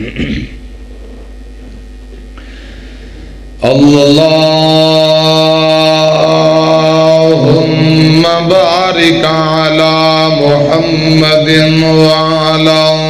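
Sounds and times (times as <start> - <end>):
man chanting melodic recitation: 3.6 - 13.0.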